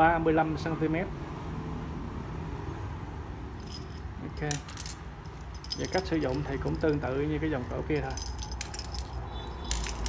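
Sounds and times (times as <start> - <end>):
small bell jingling: 3.6 - 10.0.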